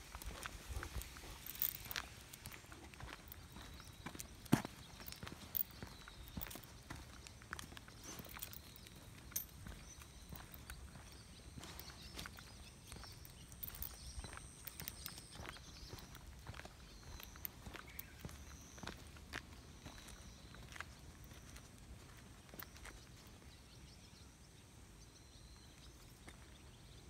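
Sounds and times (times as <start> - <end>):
footsteps on paved path: 0.0 - 24.2, 25.5 - 27.0.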